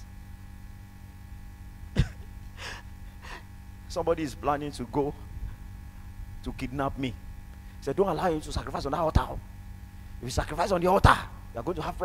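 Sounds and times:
man gasping into microphone: 2.6s - 3.5s.

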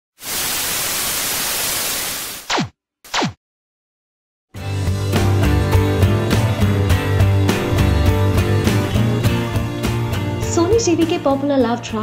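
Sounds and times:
tv static hiss: 0.2s - 2.5s.

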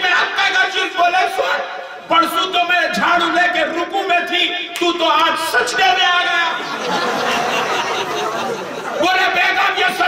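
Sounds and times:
man speaking into a microphone: 0.0s - 6.8s, 8.8s - 10.0s.

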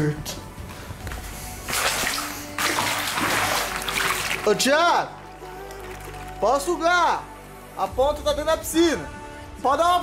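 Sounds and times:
water sloshing and splashing: 1.6s - 6.4s.

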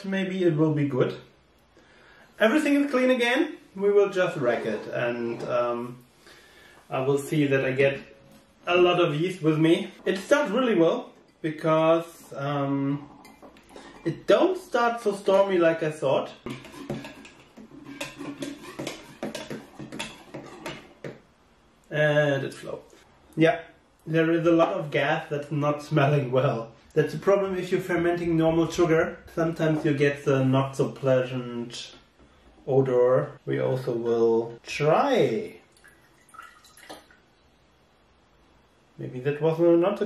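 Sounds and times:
liquid dripping into a glass: 35.7s - 37.2s.

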